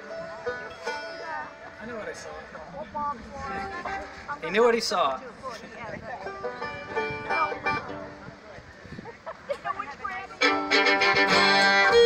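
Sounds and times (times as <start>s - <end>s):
banjo picking: 0.0s - 2.7s, 5.6s - 8.4s, 10.2s - 12.0s
bluegrass string band: 0.0s - 12.0s.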